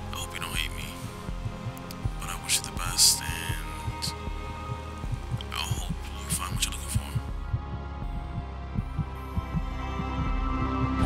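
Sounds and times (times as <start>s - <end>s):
soft low thumps: 0.0s - 11.0s
steady low hum: 0.0s - 11.0s.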